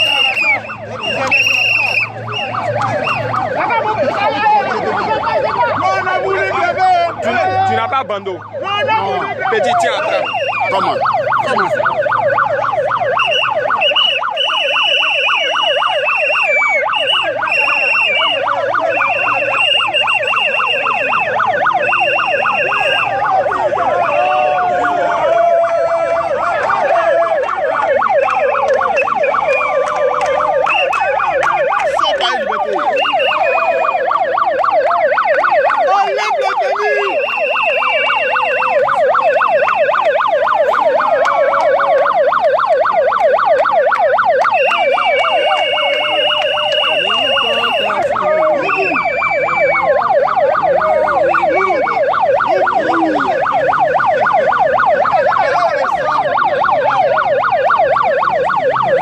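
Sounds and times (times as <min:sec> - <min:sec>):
megaphone siren warbling yelp: 0:00.0 - 0:59.0.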